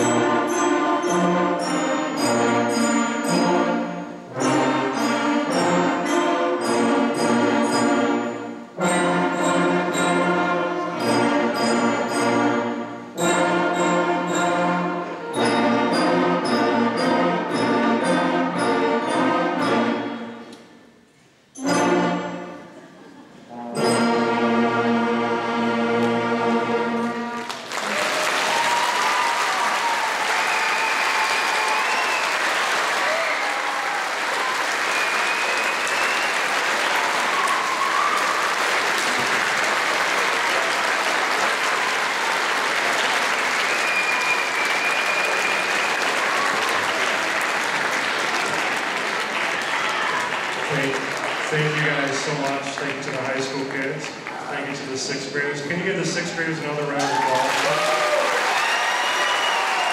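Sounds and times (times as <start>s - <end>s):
audience applauding: 27.3s - 55.0s, 56.9s - 59.9s
audience cheering: 27.5s - 53.3s, 56.9s - 59.9s.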